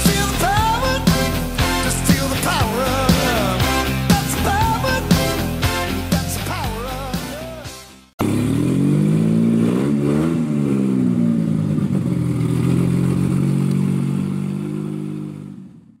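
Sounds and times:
car engine revving: 0:08.2 - 0:16.0.

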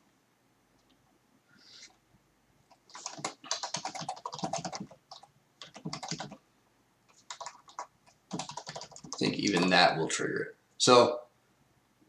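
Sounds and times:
computer keyboard typing: 0:02.7 - 0:06.4, 0:07.1 - 0:09.8.

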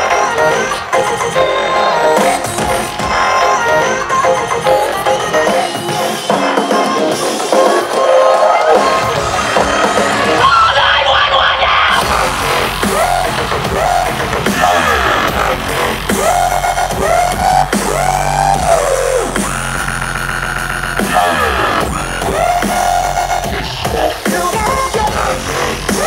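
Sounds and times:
dubstep synth lines swooping: 0:08.7 - 0:26.0
deep bass: 0:11.7 - 0:26.0.

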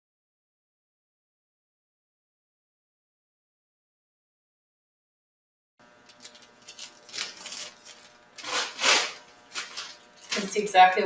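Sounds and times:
wax paper rustling and crinkling: 0:06.1 - 0:11.0.

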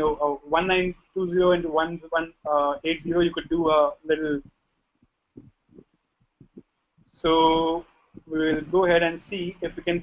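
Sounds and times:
faint low thumps: 0:05.3 - 0:10.0.

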